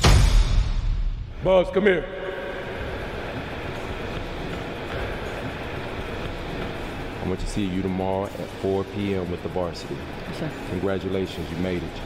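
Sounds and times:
faint steady tones: 1.8 - 12.0.

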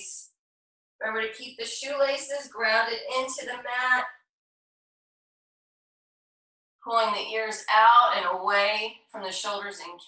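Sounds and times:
woman's voice: 0.0 - 0.2, 1.0 - 4.0, 6.9 - 10.0.

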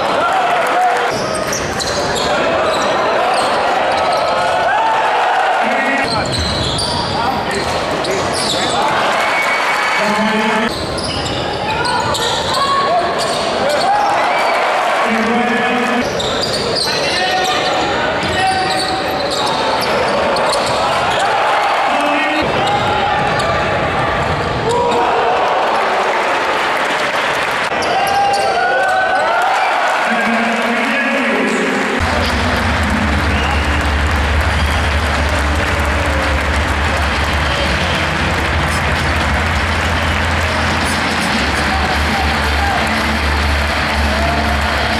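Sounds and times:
crowd and player voices: 0.0 - 44.9.

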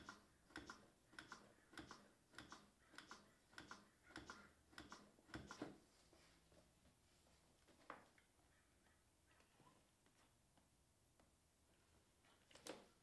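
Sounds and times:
manikin clicking under compressions: 0.0 - 5.8.

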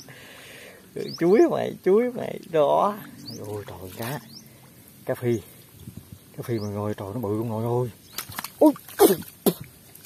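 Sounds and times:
squelching and slapping in mud: 8.1 - 10.0.

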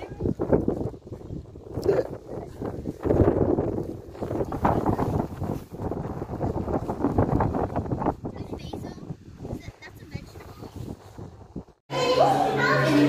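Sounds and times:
wind buffeting microphone: 0.0 - 11.8.

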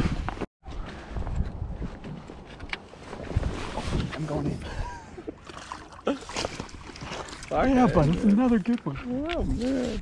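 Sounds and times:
wind buffeting microphone: 0.0 - 2.5.

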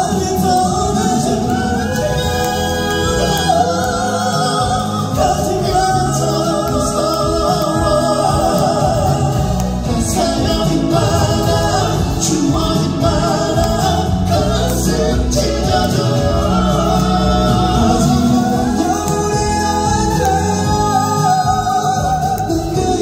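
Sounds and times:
male vocal trio singing: 0.0 - 23.0.

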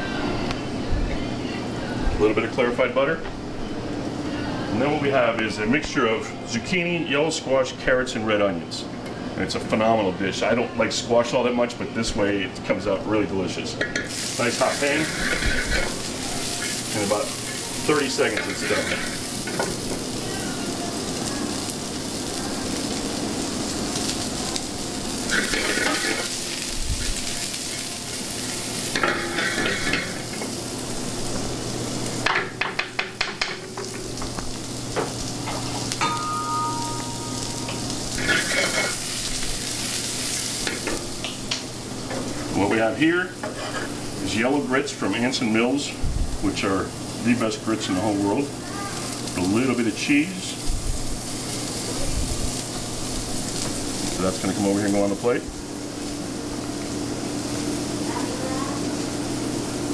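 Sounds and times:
vegetables sizzling in pan: 13.8 - 59.9.

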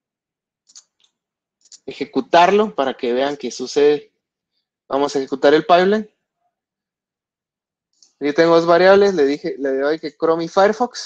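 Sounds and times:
computer mouse clicks: 0.7 - 1.8, 7.9 - 8.2
man speaking: 1.7 - 4.0, 4.9 - 6.1, 8.2 - 11.0.

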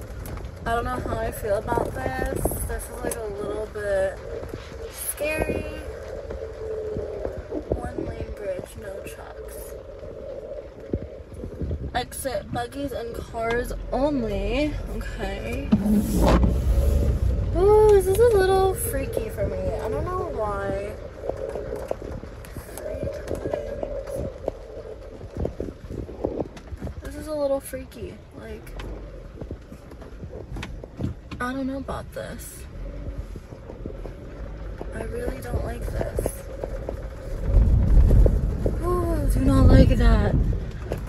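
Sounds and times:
hollow wooden knocks and clatter: 0.0 - 13.8, 14.9 - 27.8, 28.6 - 31.9, 32.6 - 41.0
car interior hum and rumble: 0.0 - 41.0.

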